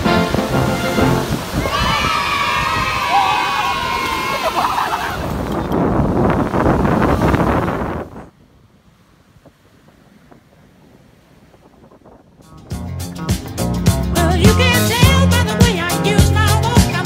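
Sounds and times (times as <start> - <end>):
wind buffeting microphone: 0.0 - 13.8
surf rushing over shoreline: 0.0 - 17.0
music with a beat: 12.5 - 17.0.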